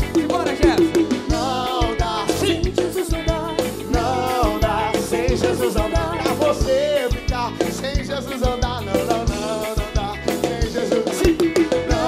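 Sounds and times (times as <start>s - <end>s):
accordion melody: 0.0s - 12.0s
bass: 0.0s - 12.0s
congas: 0.0s - 12.0s
drum kit: 0.0s - 12.0s.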